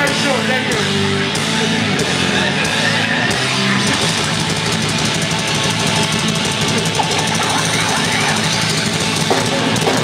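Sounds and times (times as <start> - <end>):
bass guitar: 0.0 - 10.0
distorted guitars: 0.0 - 10.0
drums: 0.0 - 10.0.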